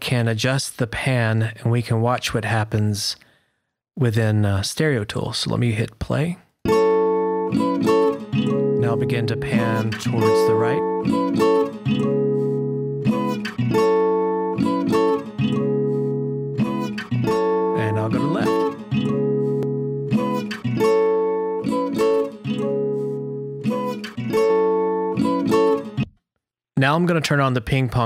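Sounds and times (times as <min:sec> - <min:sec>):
guitar strumming chords: 0:06.7 - 0:26.1.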